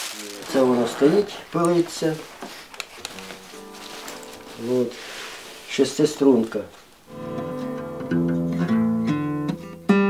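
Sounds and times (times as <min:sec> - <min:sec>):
guitar open strings ringing: 0:00.7 - 0:09.6.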